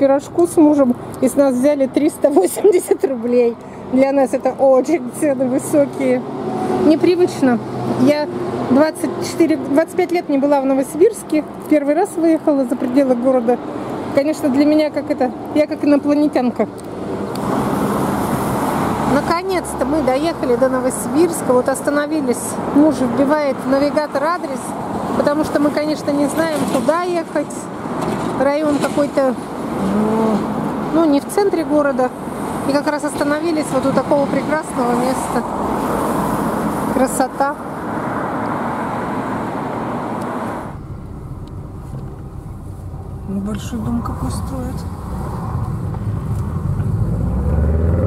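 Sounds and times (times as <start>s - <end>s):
road traffic rushing: 0.0s - 48.0s
low rumble: 40.6s - 47.3s.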